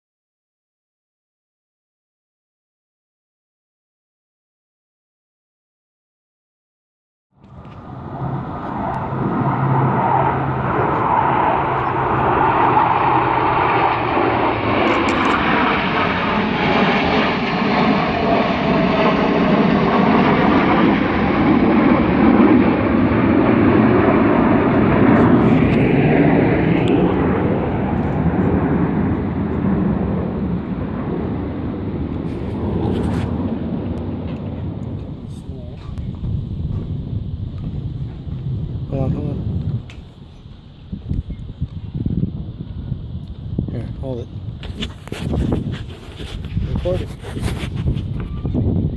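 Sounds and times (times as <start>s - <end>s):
jets flying over: 7.4s - 48.9s.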